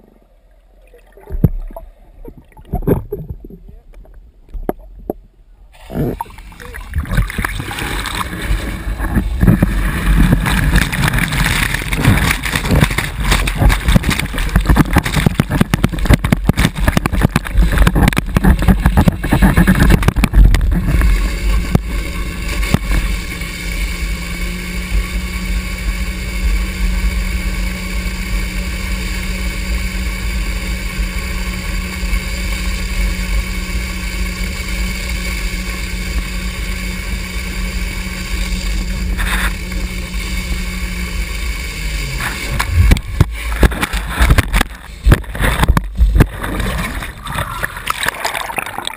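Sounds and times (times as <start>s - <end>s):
motorboat engine running: 0.0s - 48.9s
wind: 0.0s - 48.9s
rumbling buffets on microphone: 1.2s - 48.9s
churning water splashing: 4.5s - 48.9s.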